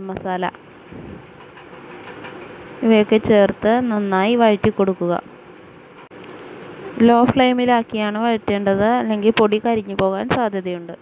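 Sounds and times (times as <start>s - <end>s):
person speaking: 2.8s - 5.2s, 6.8s - 11.0s.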